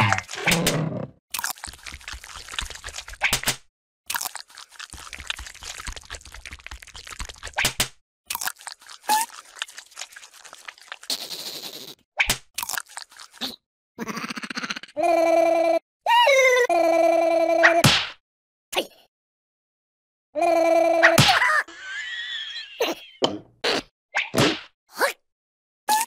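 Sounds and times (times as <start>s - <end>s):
cartoon crunching and chewing: 1.3s - 3.2s, 4.1s - 7.6s, 8.3s - 11.8s, 12.6s - 13.6s
cartoon vocal sound: 14.0s - 17.8s, 20.4s - 21.2s.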